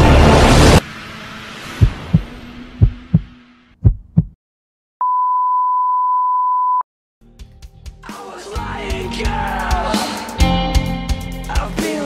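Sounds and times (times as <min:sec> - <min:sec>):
rumble: 0:00.0 - 0:04.4
heartbeat thuds: 0:01.8 - 0:04.4
steady high beep: 0:05.0 - 0:06.8
music: 0:07.2 - 0:12.0.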